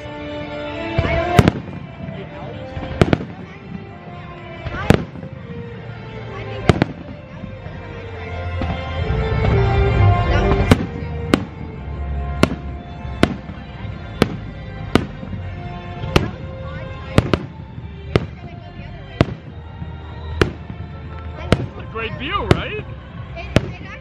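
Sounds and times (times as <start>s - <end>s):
fireworks bursting with sharp bangs: 0.0s - 24.0s
music: 0.0s - 24.0s.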